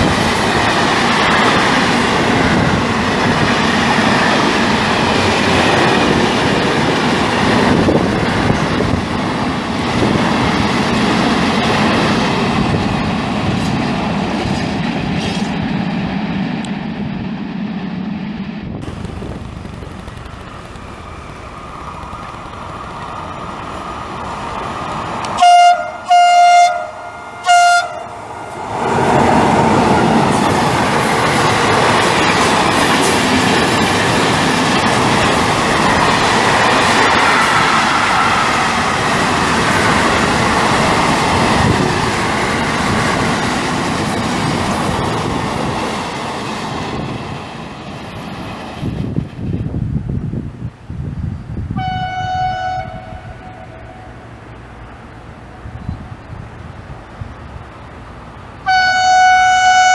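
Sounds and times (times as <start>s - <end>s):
train passing with rushing rumble: 0.0s - 59.9s
train horn blasts: 25.3s - 28.2s, 51.8s - 54.3s, 58.6s - 59.9s.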